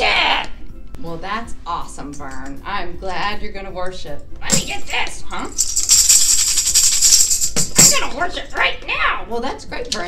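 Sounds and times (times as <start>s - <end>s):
tambourine jingles rattling: 4.5s - 8.2s.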